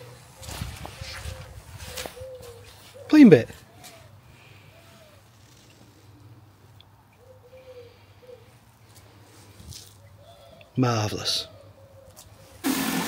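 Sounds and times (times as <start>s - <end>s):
low cooing bird calls: 0.0s - 12.6s.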